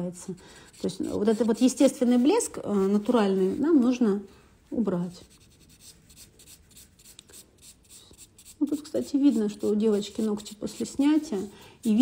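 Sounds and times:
nail file strokes on fingernail: 0:00.7 - 0:03.8, 0:05.1 - 0:12.0.

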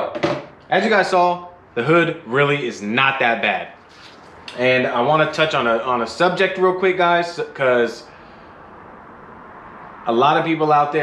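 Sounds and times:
garage room tone: 0:00.0 - 0:11.0.

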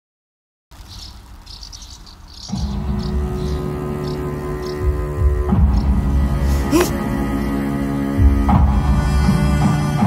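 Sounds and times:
crickets chirping: 0:00.8 - 0:06.1
low droning music: 0:02.4 - 0:10.0.

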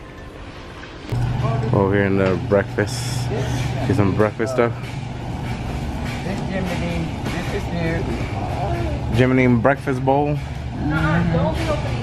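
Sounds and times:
steady low hum: 0:00.0 - 0:12.0
people talking: 0:06.2 - 0:12.0.

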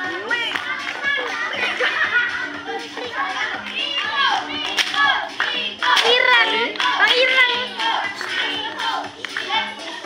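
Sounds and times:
hand claps: 0:00.4 - 0:01.1, 0:03.6 - 0:09.7.

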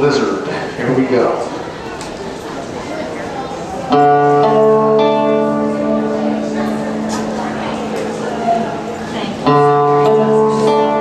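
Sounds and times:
shovel guitar strings ringing: 0:03.9 - 0:11.0.

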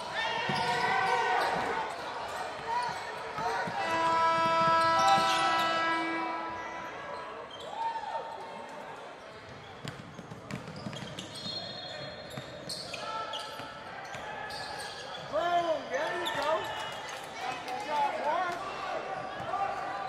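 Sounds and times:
sneakers squeaking: 0:00.0 - 0:08.0, 0:09.4 - 0:17.4
ball bouncing on wooden court: 0:09.8 - 0:11.6.

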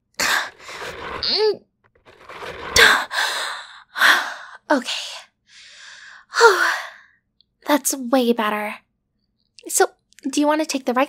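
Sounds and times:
woman breathing strained: 0:02.1 - 0:04.6.

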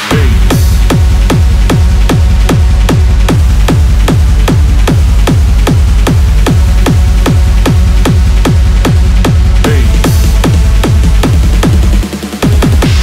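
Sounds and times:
dense electronic layer: 0:00.0 - 0:13.0
hard techno kick drum: 0:00.0 - 0:13.0.

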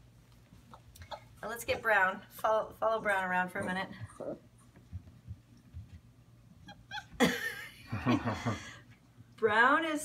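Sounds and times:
puppy squeaking: 0:06.6 - 0:07.2.

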